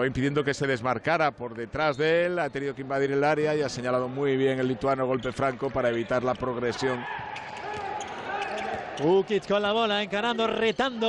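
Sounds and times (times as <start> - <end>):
ball bouncing on court: 7.0 - 9.1.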